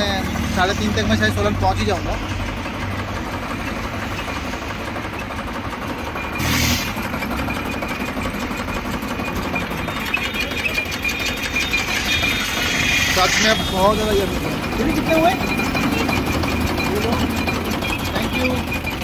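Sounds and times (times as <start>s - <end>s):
highway traffic noise: 0.0s - 19.0s.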